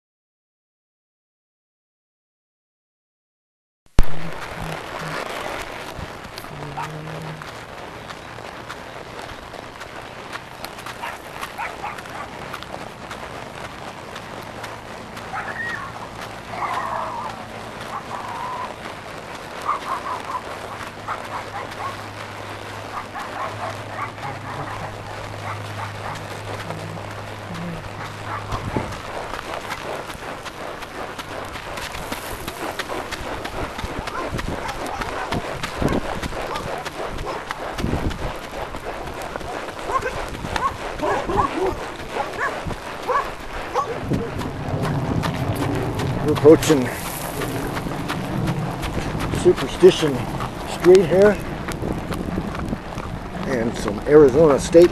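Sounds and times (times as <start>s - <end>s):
steady low hum: 4.0s - 54.9s
distant dogs barking and yipping: 4.5s - 7.6s, 8.3s - 54.9s.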